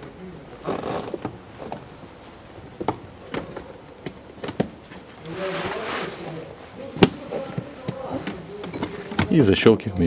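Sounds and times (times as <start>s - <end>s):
rustling scrape: 4.8s - 9.2s.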